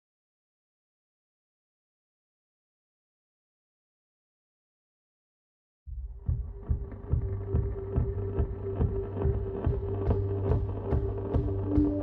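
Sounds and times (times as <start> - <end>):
background music with steady beat: 5.9 - 12.0.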